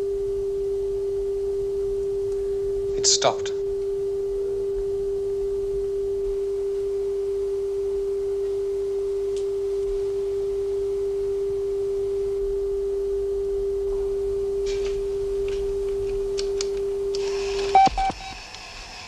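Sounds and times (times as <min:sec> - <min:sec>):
steady electronic tone: 0:00.0 - 0:18.6
faint clicks: 0:15.4 - 0:18.6.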